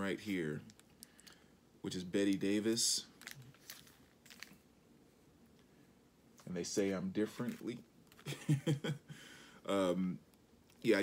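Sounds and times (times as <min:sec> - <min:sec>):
plastic record sleeve crinkling: 0:00.0 - 0:04.7, 0:06.4 - 0:08.3.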